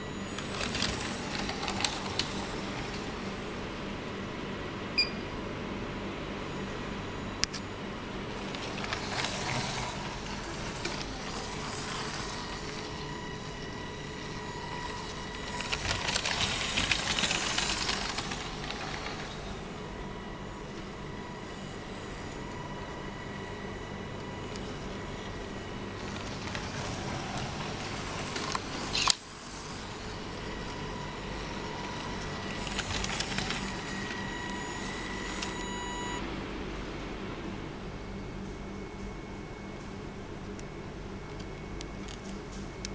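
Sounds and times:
electric motor humming: 8.4 - 19.8.

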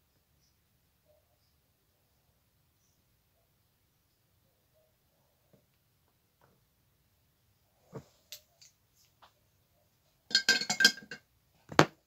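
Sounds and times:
makeup items clinking: 10.3 - 11.2.

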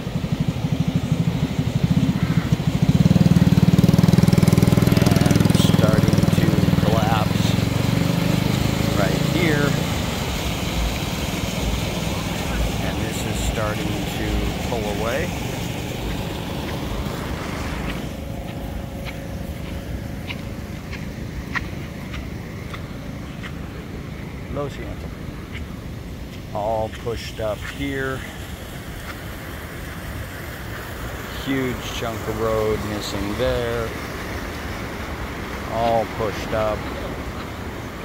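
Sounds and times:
floodwater rushing: 0.0 - 38.0.

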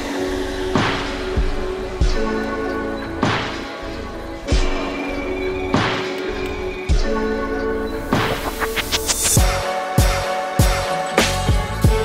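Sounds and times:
snare-like crack: 3.2 - 3.7, 5.8 - 6.4.

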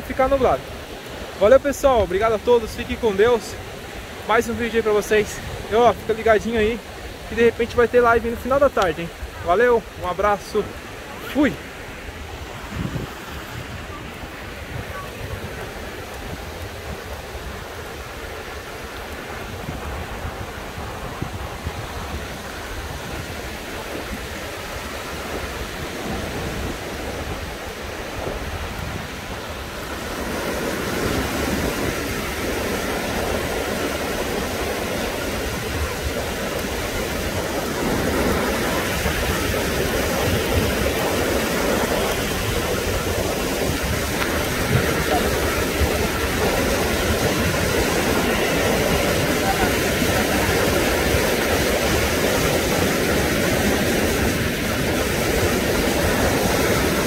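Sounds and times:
ocean surf washing onto beach: 0.0 - 57.0.

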